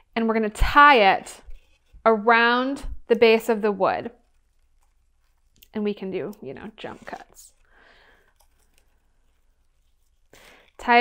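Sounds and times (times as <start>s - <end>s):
faint twine handling noise: 3.3s - 11.0s.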